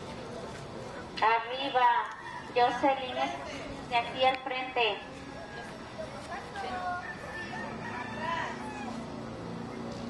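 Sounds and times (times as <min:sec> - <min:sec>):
faint voices: 0:00.0 - 0:10.0
rooster crowing: 0:06.8 - 0:09.1.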